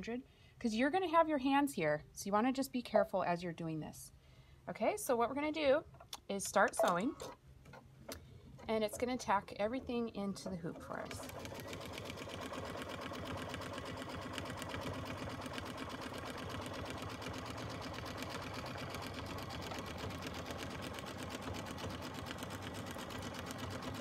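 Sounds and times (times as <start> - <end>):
embroidery machine stitching: 8.6 - 24.0.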